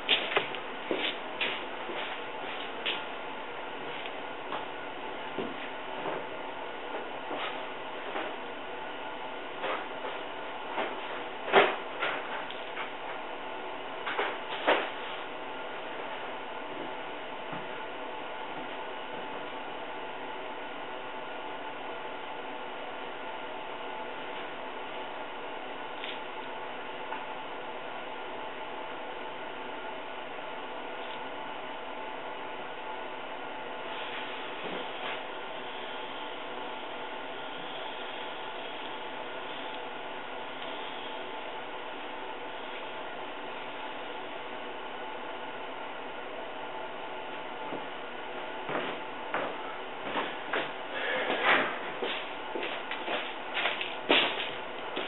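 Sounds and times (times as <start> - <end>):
air compressor running: 0.0 - 27.6, 33.5 - 55.0.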